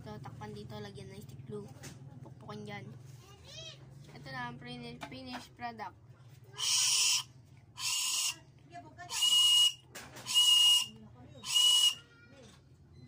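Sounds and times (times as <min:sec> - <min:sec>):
shrill whistle blasts: 0:06.6 - 0:08.4, 0:09.1 - 0:12.1.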